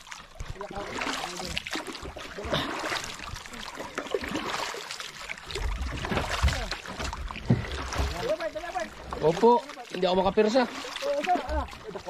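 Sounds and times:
water lapping against boat hull: 0:00.0 - 0:12.0
dull knocks on boat: 0:06.0 - 0:08.2.

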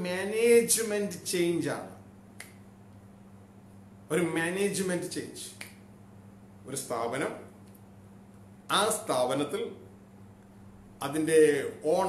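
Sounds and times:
faint steady hum: 0:00.0 - 0:12.0
man speaking: 0:08.7 - 0:09.8, 0:11.0 - 0:12.0.

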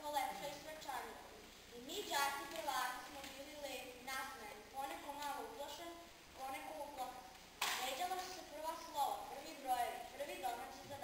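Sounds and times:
girl reading aloud: 0:00.0 - 0:11.0.

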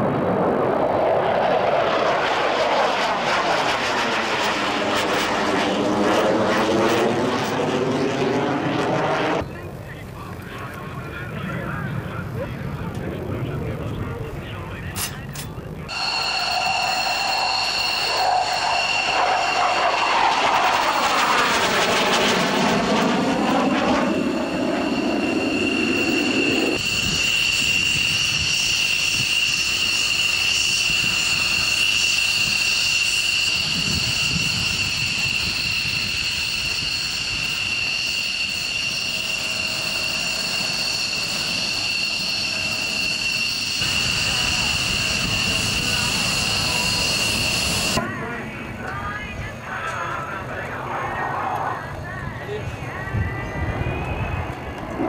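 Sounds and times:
high jet engine whine: 0:00.0 - 0:55.0
jet fighter fly-by: 0:00.0 - 0:55.0.

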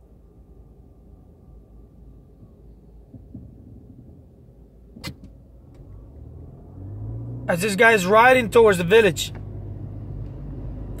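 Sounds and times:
car cabin road rumble: 0:02.4 - 0:11.0.

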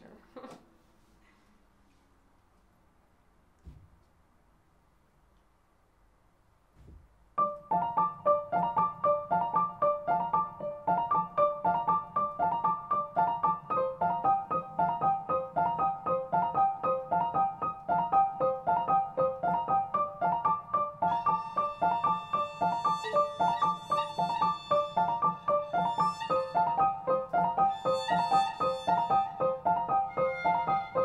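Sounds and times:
digital piano broken chords: 0:07.4 - 0:31.0
violin long held notes: 0:21.1 - 0:31.0.

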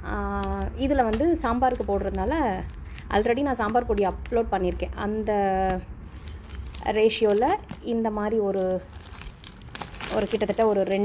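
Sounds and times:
crinkling plastic-wrapped packets: 0:00.4 - 0:04.3, 0:06.0 - 0:11.0.

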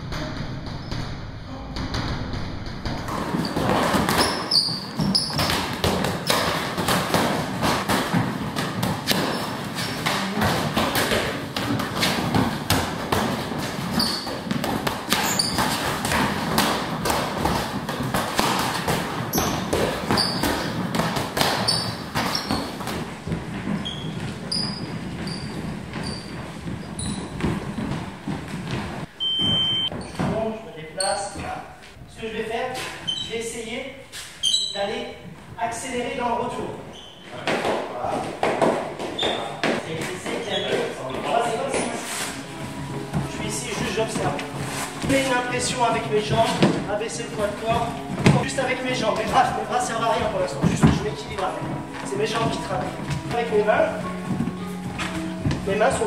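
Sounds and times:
punches landing on pads: 0:03.1 - 0:23.8, 0:47.5 - 0:53.5
short beep: 0:29.2 - 0:29.9.

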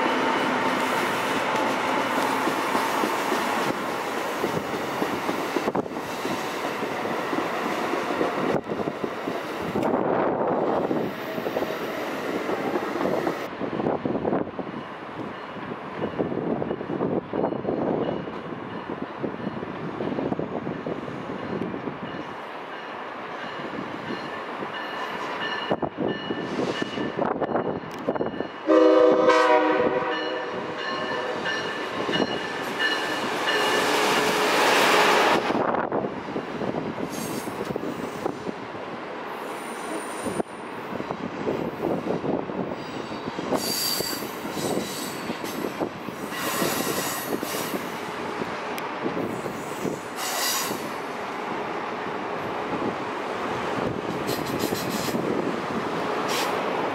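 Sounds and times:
train rumbling past: 0:00.0 - 0:56.9
train horn blast: 0:28.6 - 0:31.7
train wheel squeal: 0:37.1 - 0:38.4, 0:39.4 - 0:40.5, 0:42.7 - 0:47.9, 0:49.2 - 0:51.0, 0:54.3 - 0:55.2.

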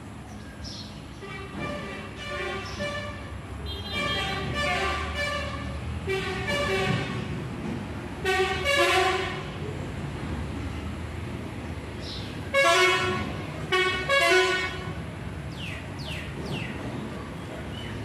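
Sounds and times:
vehicle horns honking: 0:01.2 - 0:07.3, 0:08.2 - 0:09.6, 0:12.5 - 0:15.0.

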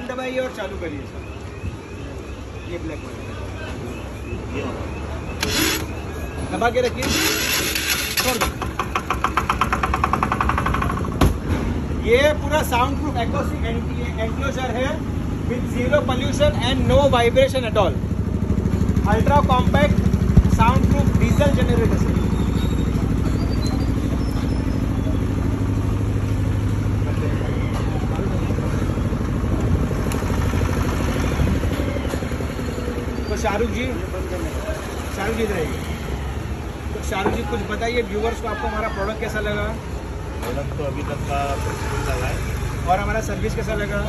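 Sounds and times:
diesel generator engine running: 0:03.9 - 0:11.2, 0:12.7 - 0:35.4.

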